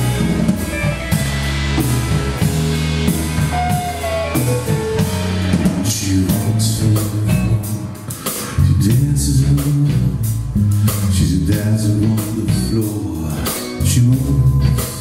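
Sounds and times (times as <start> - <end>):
gliding guitar note: 0.0 - 5.8
live rock band playing: 0.0 - 15.0
person singing: 3.5 - 15.0.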